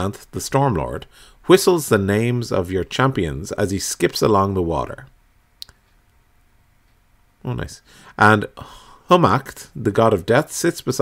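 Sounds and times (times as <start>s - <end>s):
faint tick: 5.6s - 6.2s, 6.8s - 7.1s.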